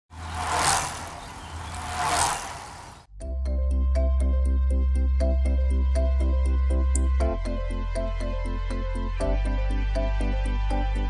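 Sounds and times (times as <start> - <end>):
whooshing rushes: 0.1 - 3.1.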